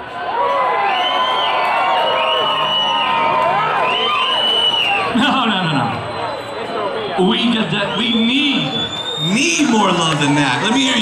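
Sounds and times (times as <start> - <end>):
crowd cheering and screaming: 0.0 - 11.0.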